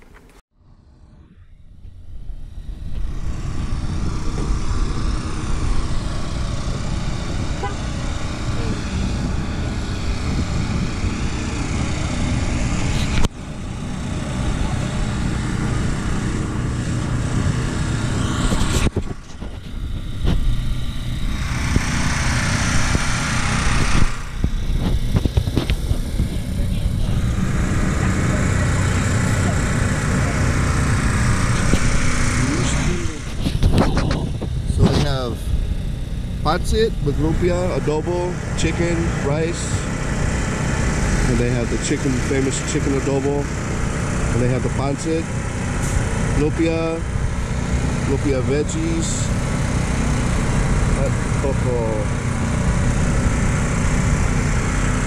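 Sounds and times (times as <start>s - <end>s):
wind rumble on microphone: 1.0s - 42.4s.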